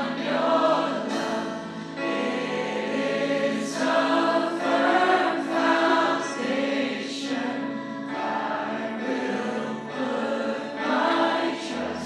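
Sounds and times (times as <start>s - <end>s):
congregation singing worship song: 0.0s - 12.0s.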